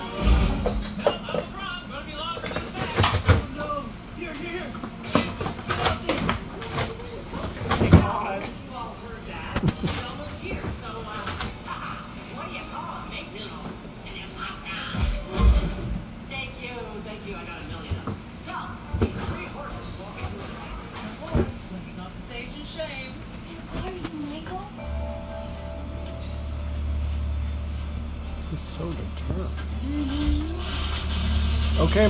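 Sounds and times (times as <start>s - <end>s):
television voices and music: 0.0s - 32.0s.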